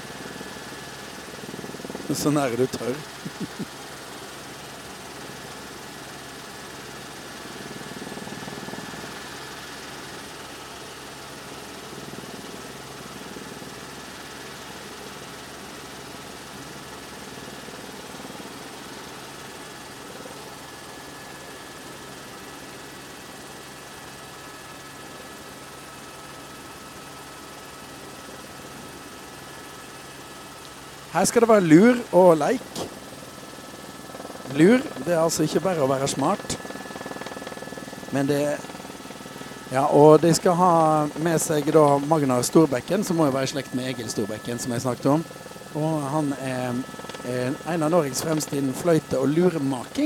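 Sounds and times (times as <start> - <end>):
light aircraft engine drone: 0.0 - 50.0.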